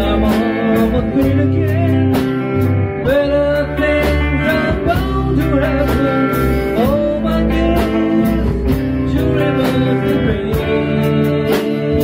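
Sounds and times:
drum kit slow beat: 0.0 - 12.0
electric bass: 0.0 - 12.0
electric guitars: 0.0 - 12.0
sliding guitar lead line: 0.0 - 12.0.

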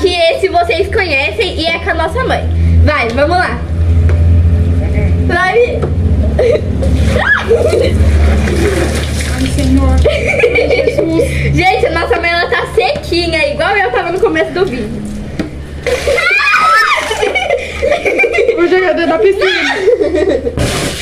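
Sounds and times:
girls talking: 0.0 - 3.7, 4.7 - 8.0, 8.9 - 20.1
steady low rumble: 0.0 - 16.1
girls laughing: 6.2 - 9.0, 10.0 - 11.6, 15.8 - 20.6.

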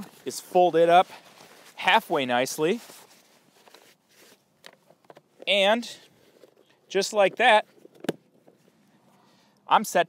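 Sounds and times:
fabric rustling: 0.0 - 9.1.

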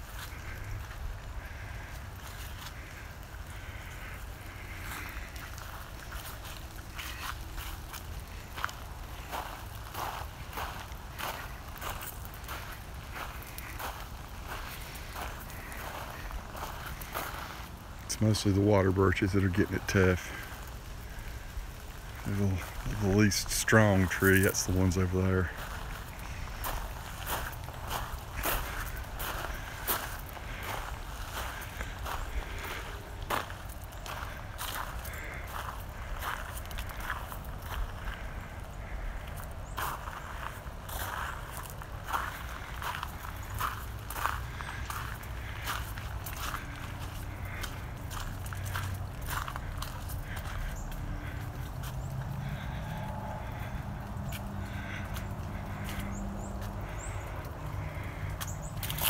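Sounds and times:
ice crunching and crackling: 0.0 - 59.0.

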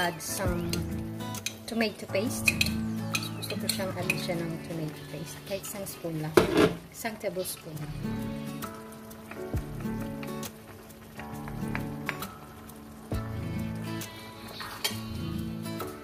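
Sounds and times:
background music with held chords: 0.0 - 6.6, 7.8 - 16.0
metal spoon clicking on pan: 2.4 - 4.4.

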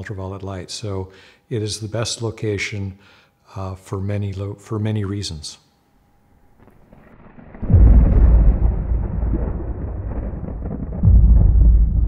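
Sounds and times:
low rumble: 7.1 - 12.0
loud deep boom: 7.2 - 12.0.

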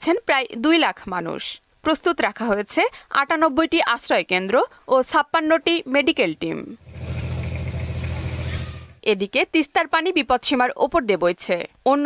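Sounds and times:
wind: 6.8 - 9.1
boat engine droning: 6.9 - 9.0.

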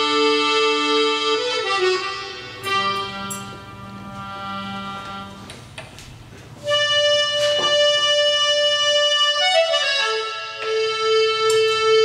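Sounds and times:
accordion playing sustained chords: 0.0 - 12.0.

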